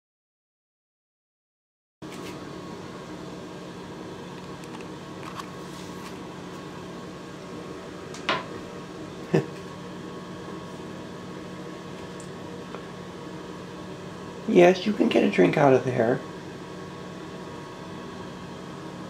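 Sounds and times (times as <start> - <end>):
steady mechanical hum: 2.0 - 19.0.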